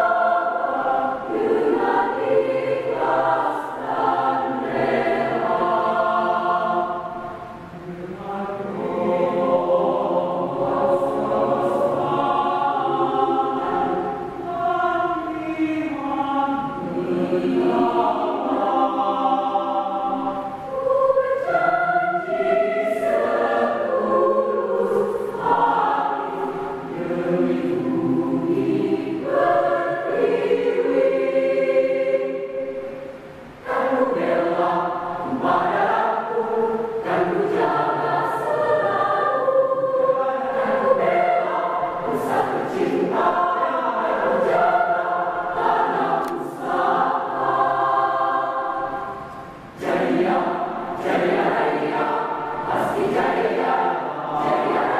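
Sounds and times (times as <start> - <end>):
mixed choir singing: 0.0 - 54.9.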